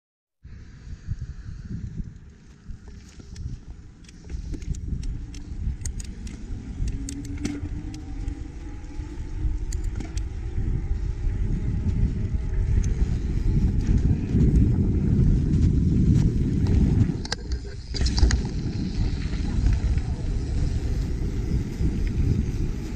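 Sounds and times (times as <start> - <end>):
wind rumbling on microphone: 0.4 - 22.9
bike clicks and rattles: 1.8 - 22.9.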